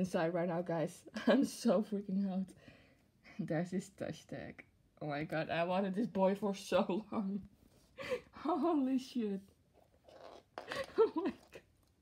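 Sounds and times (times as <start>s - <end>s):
woman breathing: 2.5s - 3.4s, 7.8s - 8.4s.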